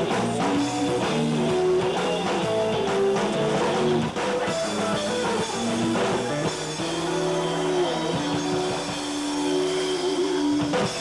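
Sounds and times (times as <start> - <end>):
drum hits: 0.0 - 9.6
electric guitar sustained notes: 0.0 - 11.0.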